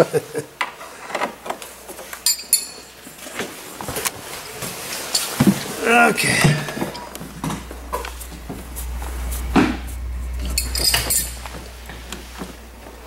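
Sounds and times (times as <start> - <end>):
wrenches clinking on metal: 2.2 - 3.1
steady low hum: 2.6 - 13.0.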